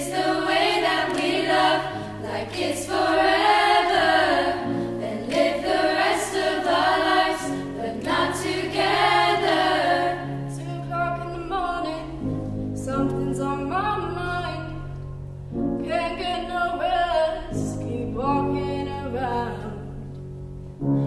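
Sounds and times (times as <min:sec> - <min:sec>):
girls' choir singing unaccompanied: 0:00.0 - 0:12.1.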